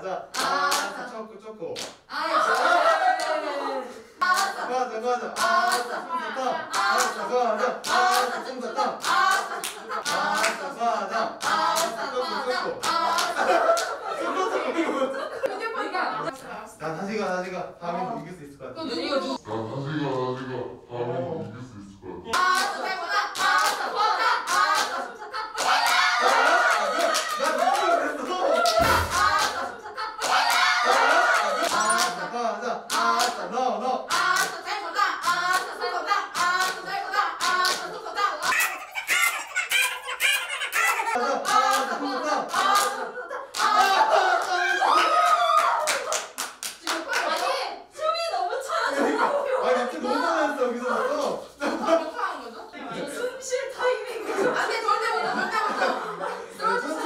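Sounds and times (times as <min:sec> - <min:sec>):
excited voices: 0:00.0 - 0:16.4, 0:20.9 - 0:57.0
people clapping: 0:00.3 - 0:01.0, 0:01.7 - 0:03.6, 0:04.2 - 0:14.4, 0:22.3 - 0:32.3, 0:32.9 - 0:47.7
laughter: 0:02.2 - 0:03.9, 0:13.2 - 0:16.3, 0:48.7 - 0:49.6, 0:51.6 - 0:52.6, 0:53.8 - 0:57.0
people shouting and cheering: 0:25.6 - 0:32.5, 0:43.6 - 0:46.4.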